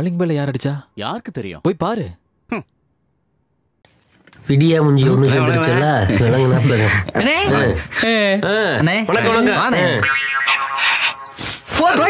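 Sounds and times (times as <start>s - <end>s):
comic pitched twang: 9.8s - 11.7s.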